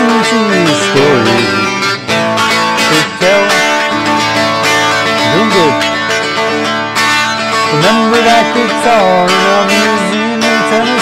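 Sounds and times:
electric guitar country-rock playing: 0.0 - 11.0.

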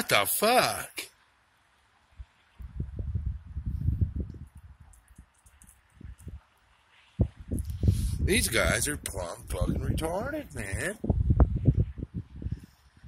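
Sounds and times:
wind buffeting microphone: 2.2 - 6.5, 7.2 - 13.0.

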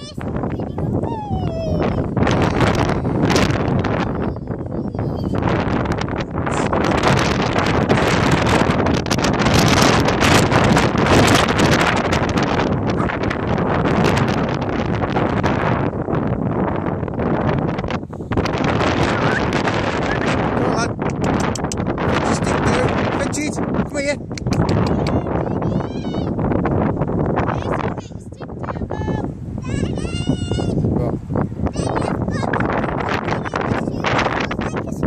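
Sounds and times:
strong wind on microphone: 0.0 - 35.0.

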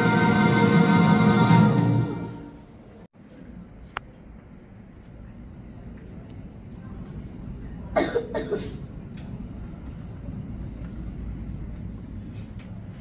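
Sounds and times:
room hum: 0.0 - 13.0
person coughing: 7.9 - 8.8.

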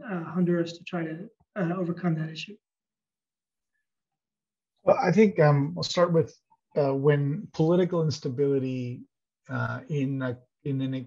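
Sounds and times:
man speaking: 4.9 - 11.0.

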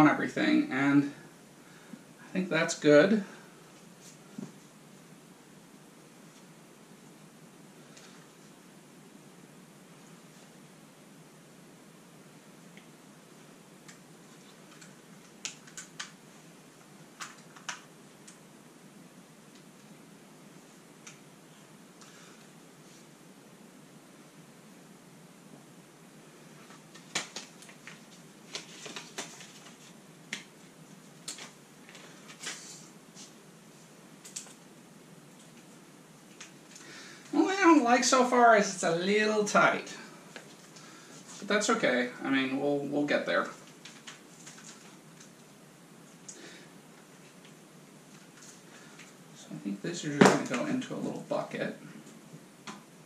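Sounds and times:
faint room hiss: 0.0 - 53.0.

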